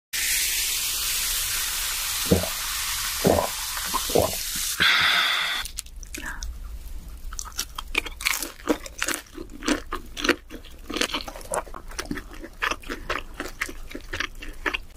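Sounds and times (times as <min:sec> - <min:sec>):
person chewing crispy food: 0:05.6 - 0:14.9.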